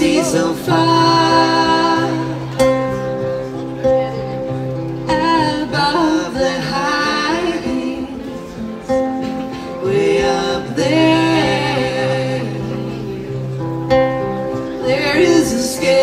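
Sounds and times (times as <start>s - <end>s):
person singing with vibrato: 0.0s - 2.8s, 5.1s - 8.5s, 9.6s - 13.6s, 14.8s - 16.0s
acoustic guitars playing: 0.0s - 16.0s.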